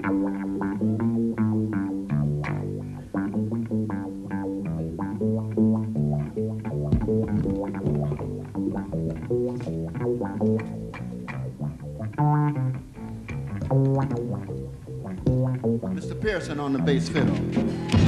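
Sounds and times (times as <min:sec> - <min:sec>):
plucked upright bass: 0:00.0 - 0:18.0.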